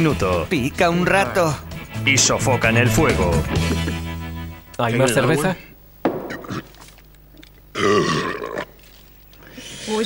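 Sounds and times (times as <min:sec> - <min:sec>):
man burping loudly: 0:06.1 - 0:07.0, 0:07.7 - 0:08.7
man gulping beer: 0:06.1 - 0:08.8.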